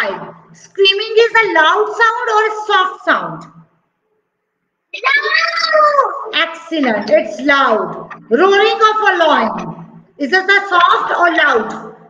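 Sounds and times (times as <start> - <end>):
child's high-pitched voice: 5.0 - 6.4.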